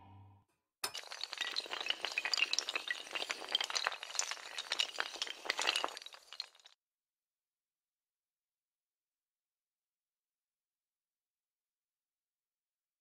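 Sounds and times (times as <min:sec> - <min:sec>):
tiles toppling like dominoes: 0:00.8 - 0:06.8.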